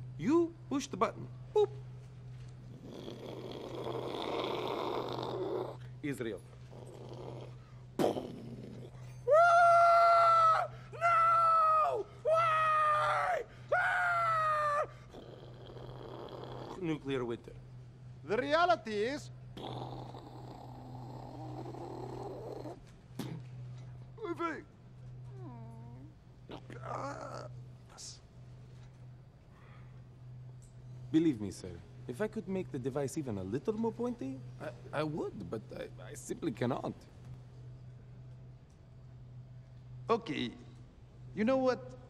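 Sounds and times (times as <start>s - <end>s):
faint low hum: 0.0s - 42.0s.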